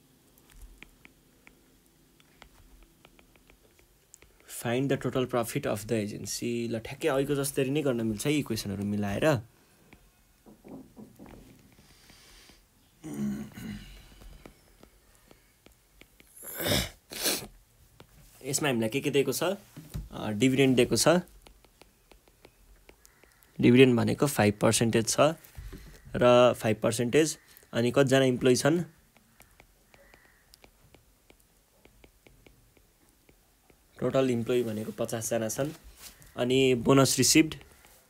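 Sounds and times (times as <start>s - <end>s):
stylus tapping on glass screen: 2.2s - 4.5s, 9.9s - 11.6s, 21.4s - 23.5s, 29.1s - 33.8s.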